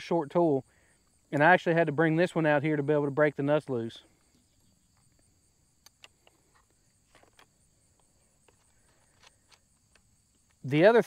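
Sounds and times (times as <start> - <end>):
faint high insect trill: 0.0 - 11.0
faint clicks: 5.8 - 10.7.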